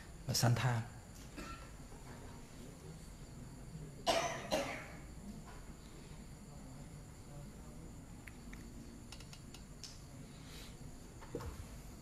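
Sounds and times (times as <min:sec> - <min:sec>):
man coughing: 0:04.0 - 0:05.0.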